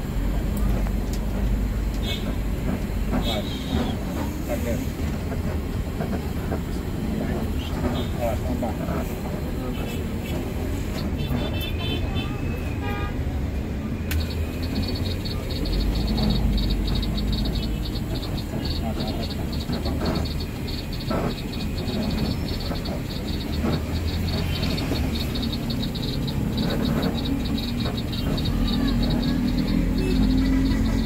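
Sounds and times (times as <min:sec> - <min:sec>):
bus engine and road rumble: 0:00.0 - 0:31.0.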